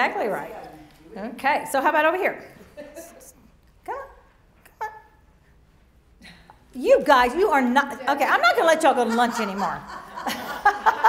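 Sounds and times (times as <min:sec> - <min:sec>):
woman speaking: 0:03.8 - 0:05.1, 0:06.7 - 0:09.9.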